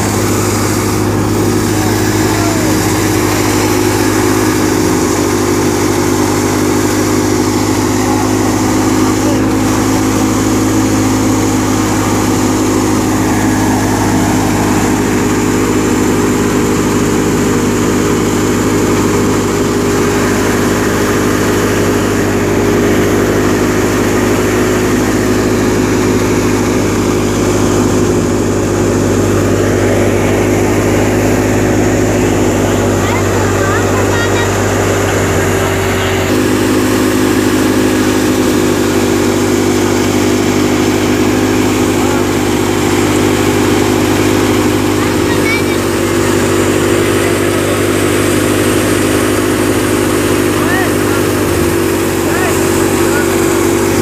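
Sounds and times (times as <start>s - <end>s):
threshing machine running: 0.0s - 54.0s.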